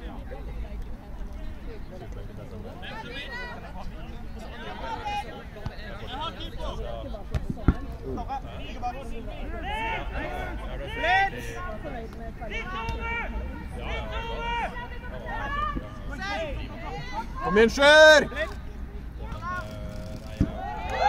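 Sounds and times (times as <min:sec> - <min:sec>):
players calling and shouting: 0:02.7 - 0:21.0.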